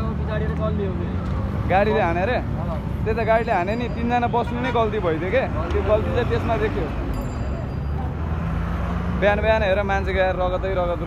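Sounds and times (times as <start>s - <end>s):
man talking: 0.0s - 7.0s
road traffic rumble: 0.0s - 11.0s.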